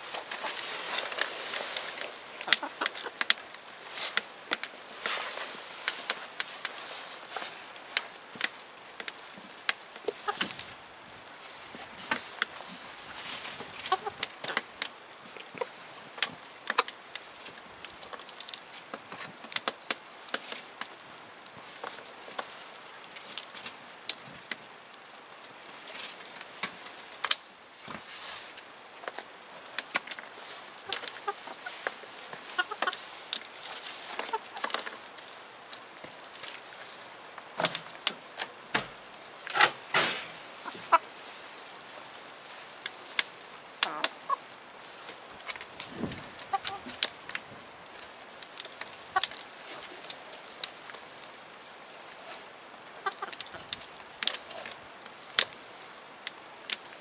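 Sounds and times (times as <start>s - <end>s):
chickens clucking: 0.0s - 8.2s, 9.0s - 10.8s, 11.8s - 18.6s, 30.3s - 38.3s, 39.1s - 41.4s, 43.0s - 47.6s, 52.8s - 54.6s
beaks pecking on tray: 0.2s - 5.2s, 13.4s - 21.0s, 29.0s - 39.8s, 52.9s - 55.6s.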